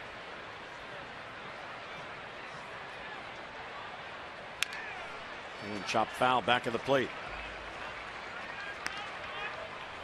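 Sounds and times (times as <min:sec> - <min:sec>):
crowd murmur: 0:00.0 - 0:10.0
wooden bat crack: 0:04.6 - 0:04.9, 0:08.7 - 0:09.1.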